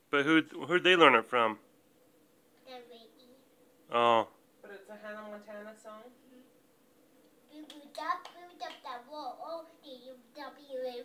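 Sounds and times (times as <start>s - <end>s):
hand clap: 7.6s - 8.9s.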